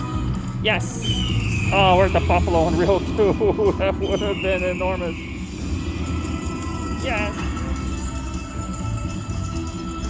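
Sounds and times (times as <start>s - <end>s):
slot machine bonus game sounds: 1.2s - 10.0s.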